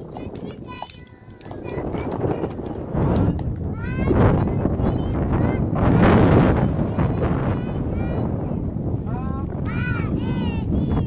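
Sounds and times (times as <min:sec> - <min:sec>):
hands clapping: 0:00.0 - 0:04.3.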